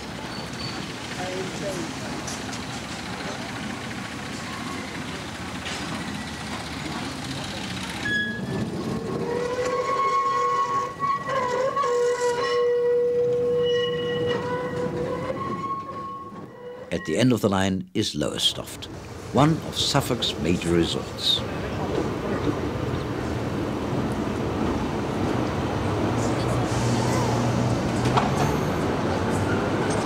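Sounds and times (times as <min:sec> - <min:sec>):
diesel locomotive running: 0:00.0 - 0:30.0.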